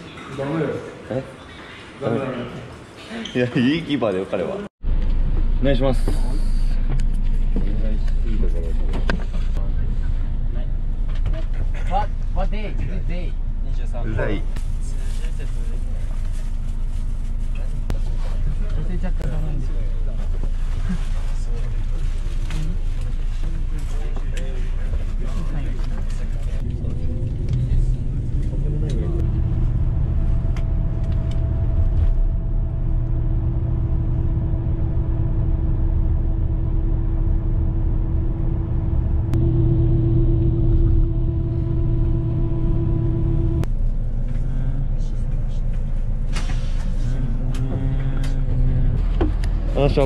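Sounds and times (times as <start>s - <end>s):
bus engine and road noise: 4.8s - 50.0s
droning tone: 26.6s - 45.6s
voices: 46.5s - 50.0s.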